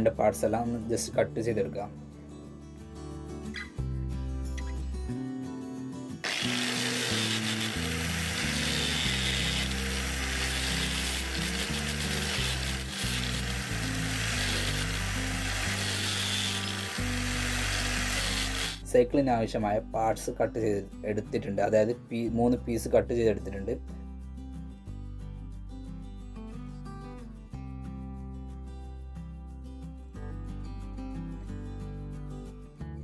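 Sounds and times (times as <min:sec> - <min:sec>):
background music: 0:00.0 - 0:33.0
power tool grinding shell: 0:06.2 - 0:18.9.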